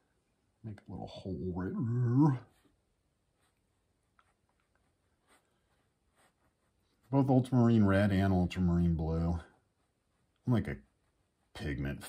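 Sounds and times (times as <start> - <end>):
paintbrush strokes on canvas: 2.4 - 12.0.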